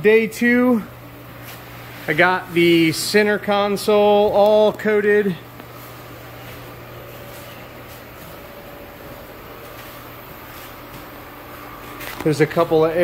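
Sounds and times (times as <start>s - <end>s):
steady machine hum with hiss: 0.0s - 13.0s.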